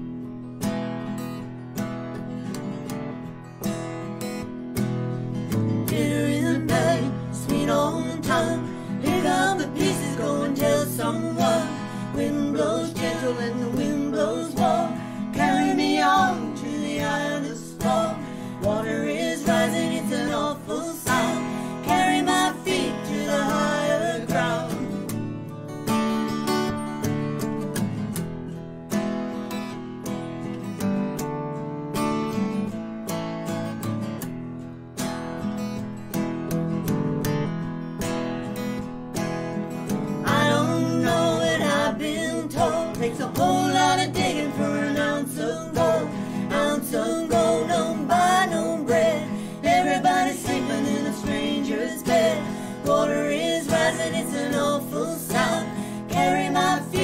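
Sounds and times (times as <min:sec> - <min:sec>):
acoustic guitars strumming: 0:00.0 - 0:57.0
women singing: 0:05.7 - 0:25.3, 0:40.2 - 0:57.0.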